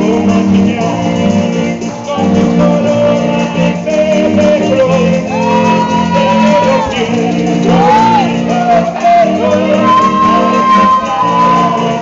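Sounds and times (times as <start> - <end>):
accordion playing chords: 0.0 - 12.0
person singing long notes: 0.0 - 12.0.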